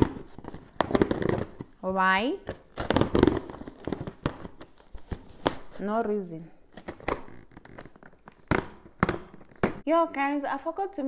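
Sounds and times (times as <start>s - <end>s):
packaging rustling and crinkling: 2.6s - 5.8s.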